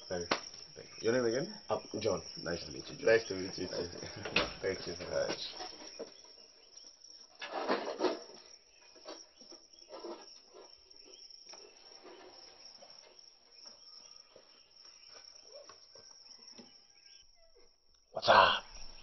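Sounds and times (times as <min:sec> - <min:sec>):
crickets chirping: 0:00.0 - 0:19.0.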